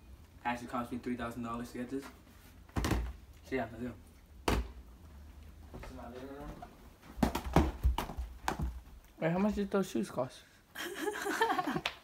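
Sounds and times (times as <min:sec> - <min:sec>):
footsteps: 0:04.6 - 0:09.8.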